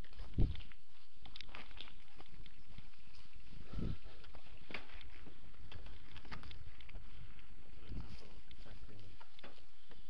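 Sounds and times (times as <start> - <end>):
wind buffeting microphone: 0.3 - 0.7, 3.6 - 4.1.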